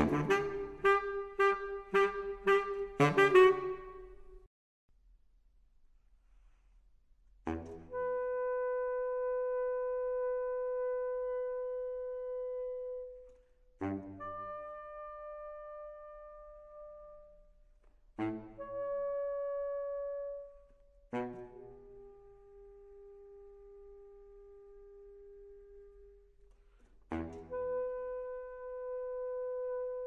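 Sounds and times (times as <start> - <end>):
baritone saxophone long note: 0.0 - 4.3.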